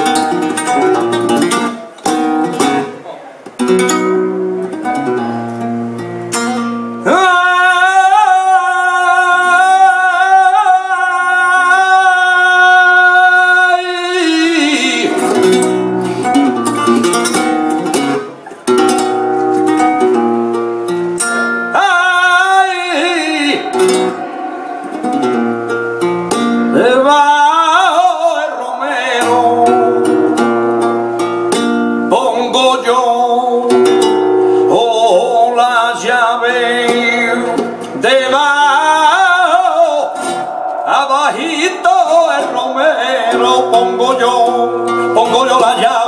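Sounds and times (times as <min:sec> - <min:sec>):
guitar strumming chords: 0:00.0 - 0:07.8, 0:12.7 - 0:46.0
man singing: 0:07.0 - 0:15.8, 0:21.3 - 0:25.4, 0:26.6 - 0:46.0.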